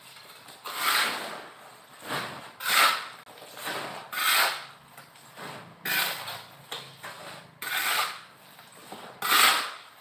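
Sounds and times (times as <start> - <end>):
scraping strokes on hard surface: 0.6 - 10.0.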